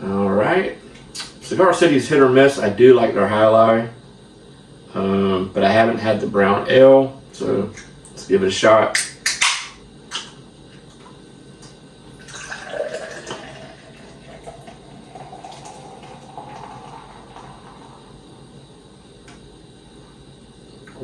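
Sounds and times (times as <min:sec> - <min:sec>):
beer pouring into a glass: 0:12.1 - 0:18.4.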